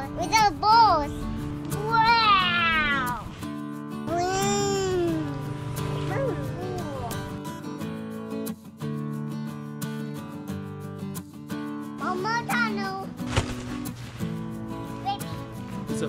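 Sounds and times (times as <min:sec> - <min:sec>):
background music with held chords: 0:00.0 - 0:12.4
young child squealing: 0:02.2 - 0:03.2.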